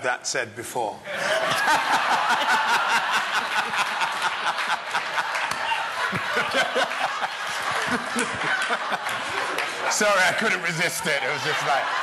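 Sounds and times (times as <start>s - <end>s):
crowd laughing: 1.1s - 12.0s.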